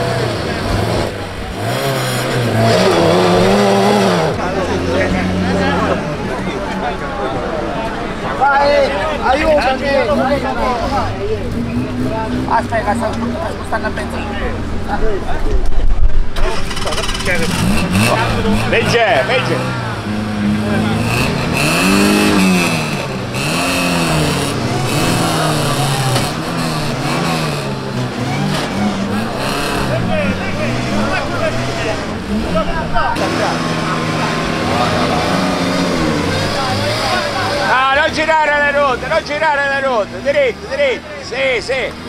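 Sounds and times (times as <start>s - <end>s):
car engine revving: 0.0s - 42.0s
voices: 0.0s - 42.0s.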